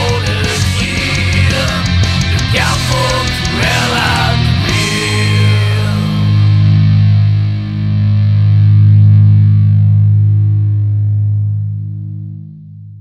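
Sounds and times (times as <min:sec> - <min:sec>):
distorted electric guitar chord ringing: 0:00.0 - 0:12.7.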